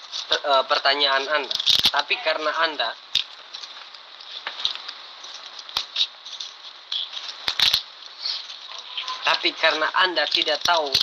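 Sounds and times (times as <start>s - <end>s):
sharp clicks and crackles: 0.0s - 11.0s
steady hiss: 0.0s - 11.0s.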